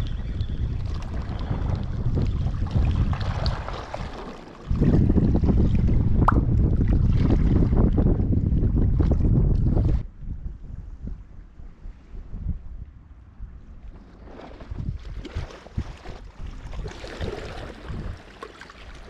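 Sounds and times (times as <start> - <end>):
wind buffeting microphone: 0.0 - 18.4
waves lapping against rocks: 0.8 - 8.0, 13.9 - 19.0.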